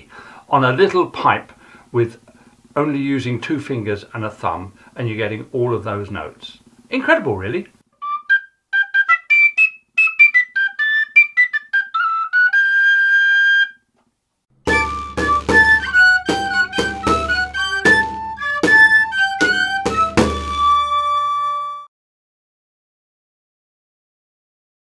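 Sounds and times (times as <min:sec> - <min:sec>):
pipe melody: 0:08.0 - 0:13.8, 0:14.6 - 0:21.9
tabor drum strokes: 0:14.7 - 0:21.1.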